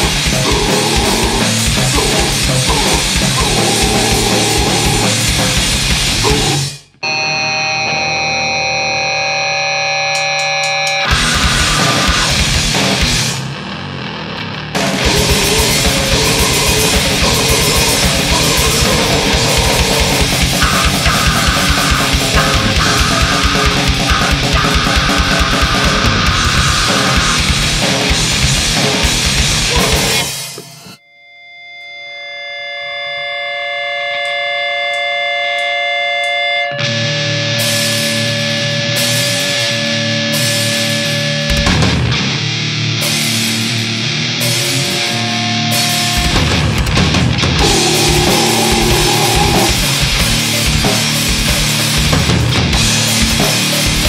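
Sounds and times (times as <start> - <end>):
grindcore band playing: 0.0 - 6.9, 10.1 - 30.6, 36.9 - 54.0
distorted electric guitar tone: 0.0 - 54.0
shrill high droning tones: 0.4 - 5.3, 15.0 - 27.4, 47.6 - 50.6.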